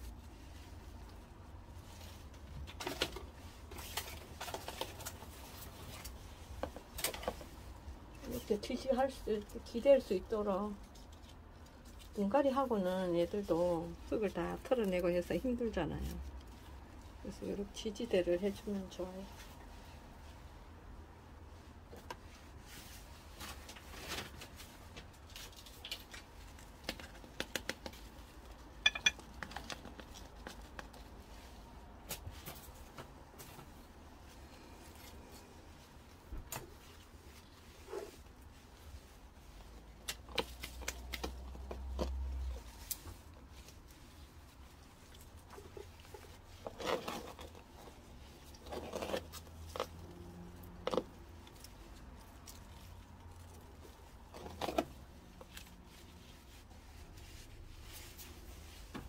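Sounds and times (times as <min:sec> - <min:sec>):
clicks and knocks against pot: 0:28.8 - 0:29.7.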